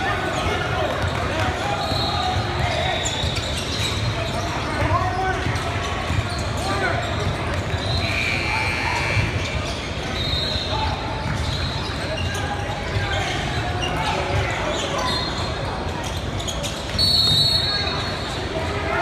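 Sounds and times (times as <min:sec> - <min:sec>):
sneaker squeaks: 0:00.0 - 0:19.0
voices of players and spectators: 0:00.0 - 0:19.0.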